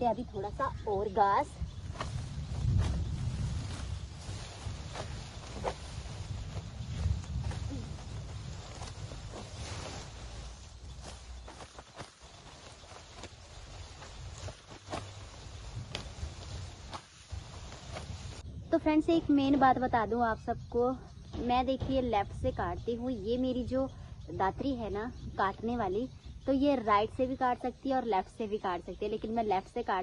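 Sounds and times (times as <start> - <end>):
leaves rustling: 0.0 - 18.7
sickle snipping grass stalks: 1.8 - 18.4.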